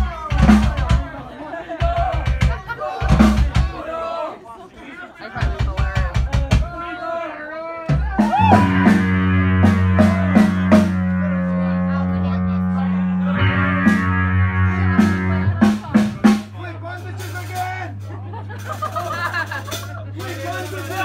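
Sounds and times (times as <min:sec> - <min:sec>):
drum and cymbal hits: 0:00.0 - 0:01.2, 0:01.8 - 0:03.8, 0:05.4 - 0:06.8, 0:07.9 - 0:11.1, 0:13.4 - 0:21.0
rock band closing chord: 0:07.9 - 0:18.9
low amplifier hum: 0:07.9 - 0:20.2.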